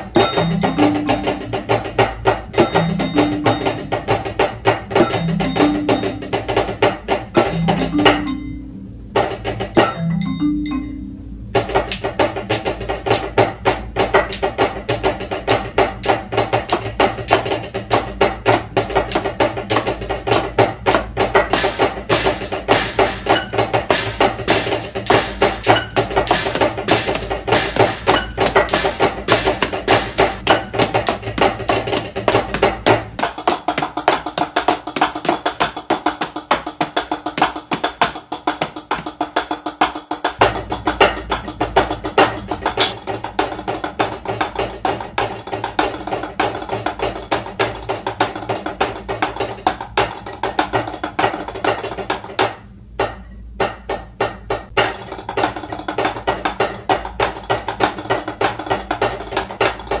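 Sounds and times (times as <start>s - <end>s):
drumstick strokes on snare: 0.0s - 39.2s.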